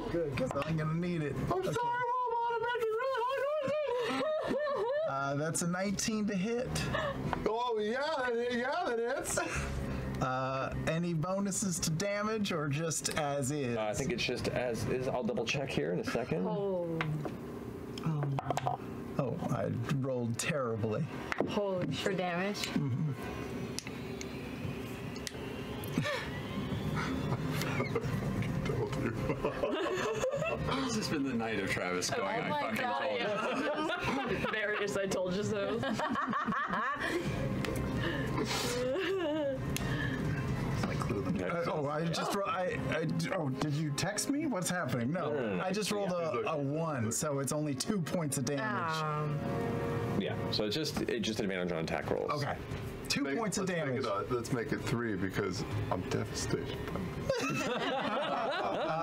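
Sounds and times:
group of people laughing: 3.5s - 5.2s, 25.9s - 31.0s, 33.1s - 34.9s, 35.7s - 37.4s, 38.4s - 40.0s, 57.2s - 59.0s.

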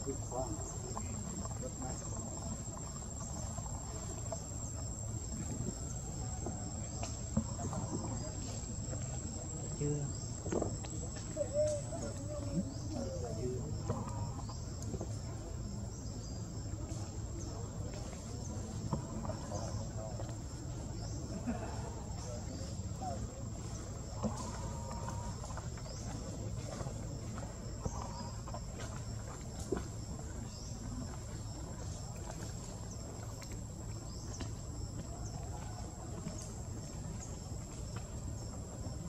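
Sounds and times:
insects chirring: 0.0s - 39.0s.

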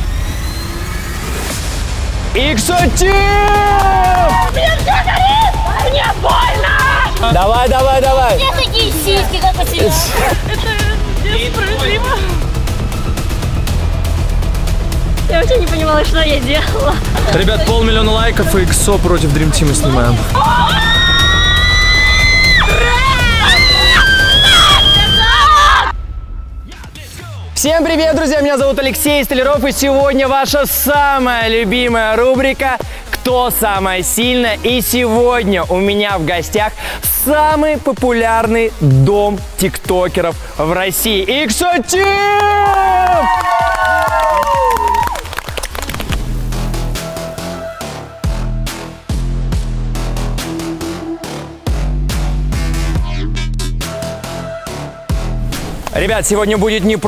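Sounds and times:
deep bass: 1.5s - 24.8s, 38.1s - 40.1s, 46.1s - 57.0s
background music with steady beat: 1.6s - 25.0s, 25.8s - 57.0s
person shouting a cheer: 3.0s - 7.2s, 42.3s - 45.1s
long high-pitched scream: 20.6s - 25.9s
electronic dance music: 38.8s - 39.5s.

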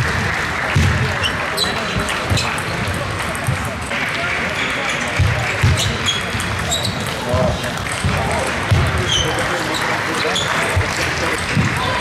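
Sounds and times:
table tennis ball clicks: 5.7s - 8.1s.

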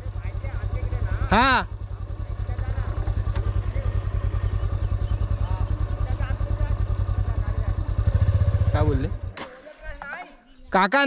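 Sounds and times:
motorcycle engine running: 0.0s - 10.8s.

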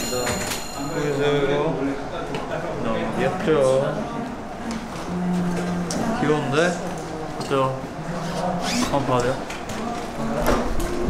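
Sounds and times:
high ringing tone: 0.0s - 1.8s.

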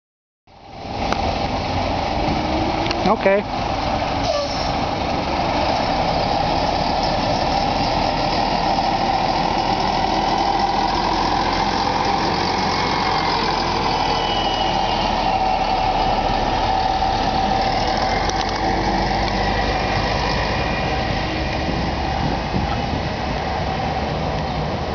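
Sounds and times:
bus diesel engine driving past: 0.5s - 24.9s.

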